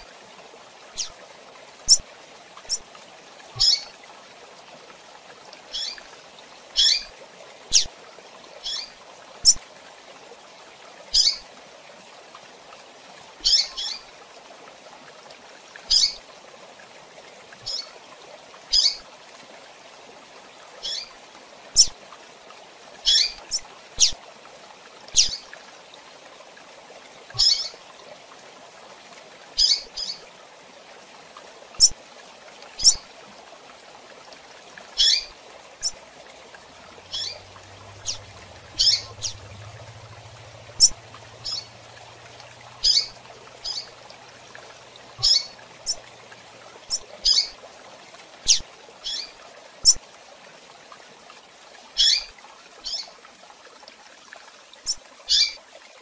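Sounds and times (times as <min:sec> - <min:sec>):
bird chirping: 0:03.6 - 0:03.9, 0:37.1 - 0:39.4, 0:40.8 - 0:41.7, 0:42.8 - 0:43.9, 0:45.2 - 0:46.0.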